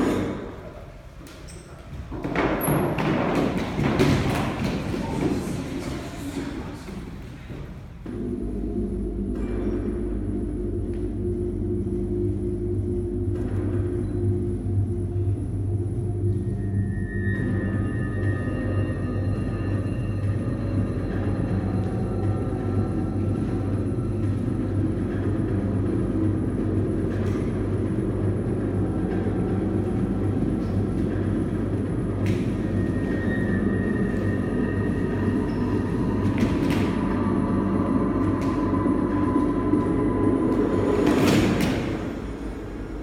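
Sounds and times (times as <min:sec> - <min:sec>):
train running noise: 0:00.0 - 0:43.0.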